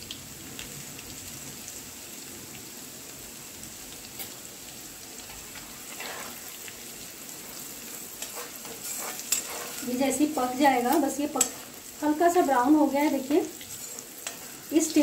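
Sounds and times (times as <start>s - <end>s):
spices sizzling in hot oil: 0.0s - 15.0s.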